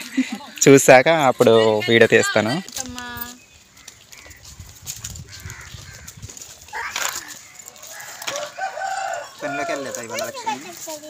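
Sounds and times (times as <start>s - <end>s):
voices nearby: 0.0s - 11.0s
rooster crowing: 7.7s - 10.3s.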